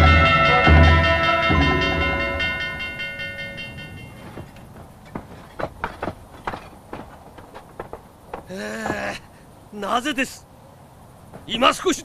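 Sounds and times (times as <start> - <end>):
large bronze bell ringing: 0.0 - 4.6.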